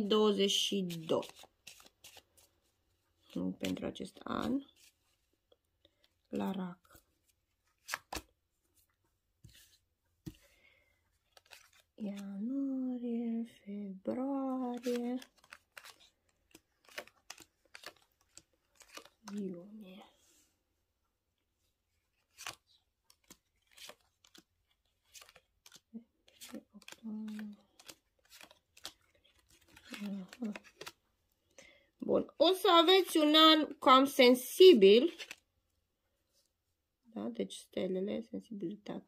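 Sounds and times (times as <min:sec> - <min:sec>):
cards being shuffled: 0:00.3 - 0:05.3, 0:05.9 - 0:12.5, 0:14.4 - 0:19.8, 0:21.9 - 0:31.1, 0:34.5 - 0:35.5.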